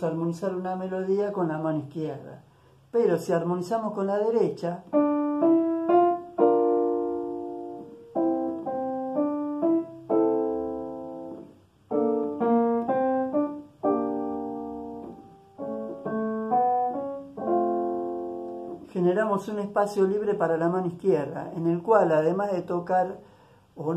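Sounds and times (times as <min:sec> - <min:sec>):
digital piano playing jazz chords: 0:03.1 - 0:22.9.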